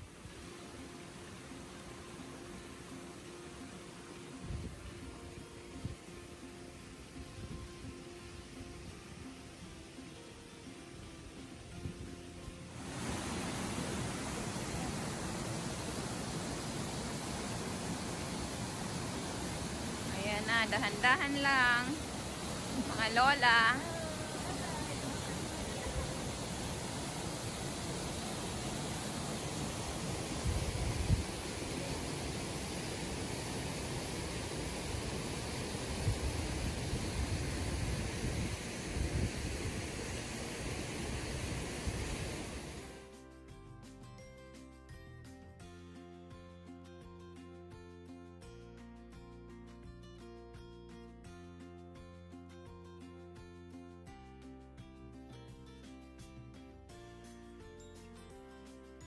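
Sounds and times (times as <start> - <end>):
waterfall rushing hiss: 0.0 - 44.0.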